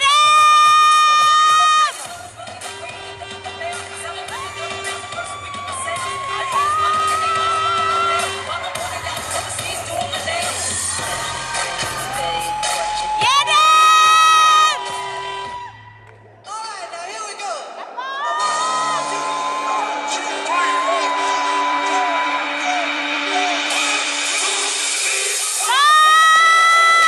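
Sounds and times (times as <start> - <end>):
audience cheering and shouting: 0.0 - 2.6, 3.6 - 16.6, 17.7 - 27.0
dance music playing: 0.0 - 27.0.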